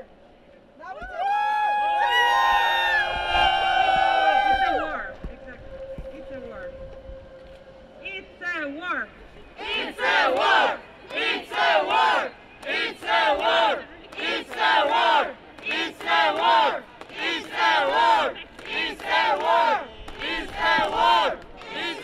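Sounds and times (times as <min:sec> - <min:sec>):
crowd chanting: 0:09.5 - 0:22.0.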